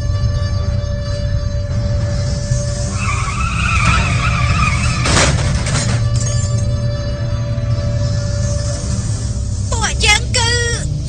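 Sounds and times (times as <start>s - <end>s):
low tense music drone: 0.0s - 11.0s
car tyres screeching: 2.0s - 9.6s
car crash: 2.6s - 6.9s.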